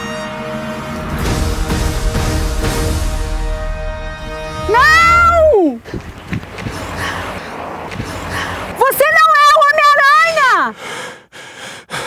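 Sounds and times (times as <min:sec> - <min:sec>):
person yelling high-pitched: 0:04.7 - 0:05.8.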